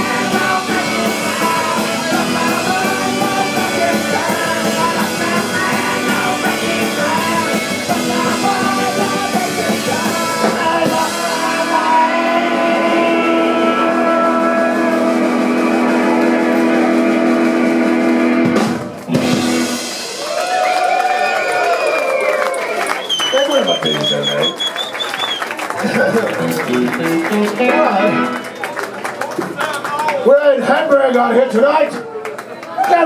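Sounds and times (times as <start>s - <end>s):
punk band playing live: 0.0s - 23.9s, 24.9s - 29.9s
loose guitar sounds: 26.3s - 28.6s.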